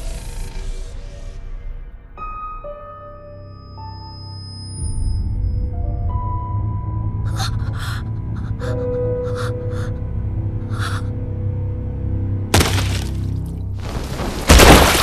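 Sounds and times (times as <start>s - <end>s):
tense background music: 0.0s - 15.0s
sharp gasping breaths: 7.3s - 11.2s
crackling electric burst: 13.8s - 15.0s.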